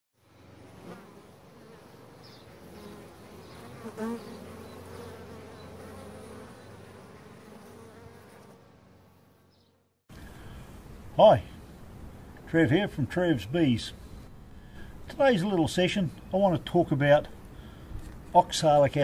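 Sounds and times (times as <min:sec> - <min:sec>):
bees buzzing: 0:00.2 - 0:12.5.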